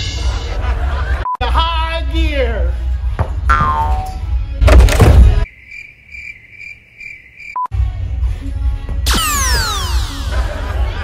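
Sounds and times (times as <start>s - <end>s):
cricket chirp sound effect: 5.4s - 7.7s
falling whistle effect: 9.1s - 10.4s.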